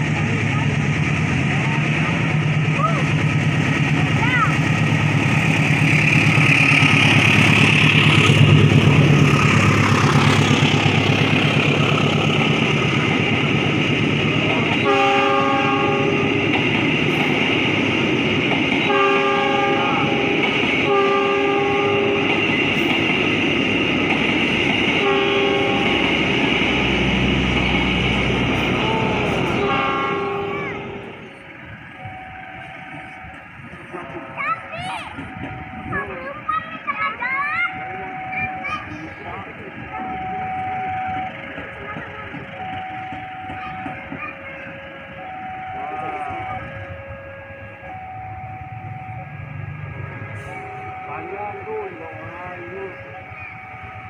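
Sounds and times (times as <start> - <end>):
locomotive engine rumble: 0.0 - 54.0
train coaches rolling on rails: 0.0 - 54.0
train horn blasts: 14.8 - 16.4, 18.9 - 22.3, 25.0 - 26.1, 28.6 - 31.2.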